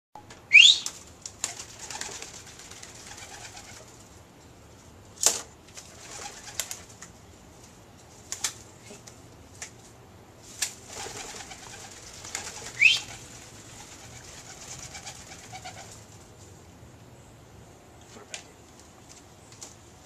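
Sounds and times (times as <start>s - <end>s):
dove wings flapping: 0.8s - 4.1s, 5.2s - 7.1s, 8.2s - 8.7s, 10.5s - 16.3s.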